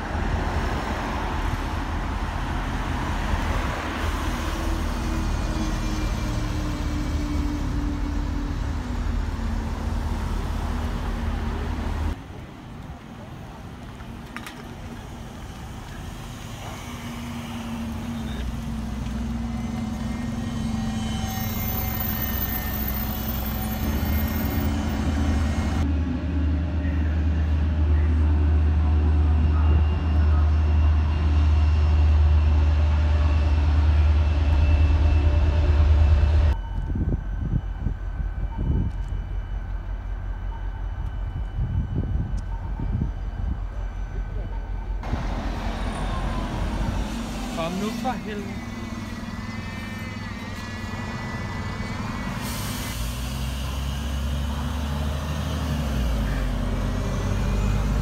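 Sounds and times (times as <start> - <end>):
bus engines rumbling: 0.0 - 58.0.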